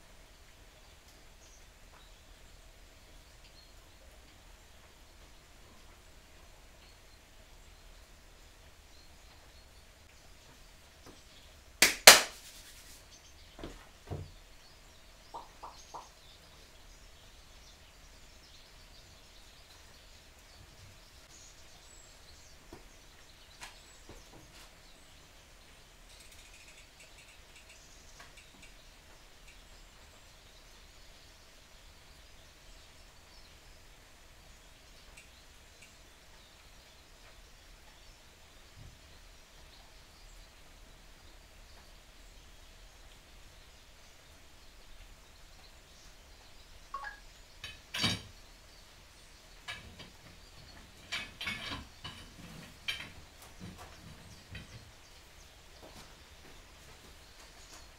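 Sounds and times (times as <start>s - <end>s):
sharp clacks: 11.8s - 13.0s.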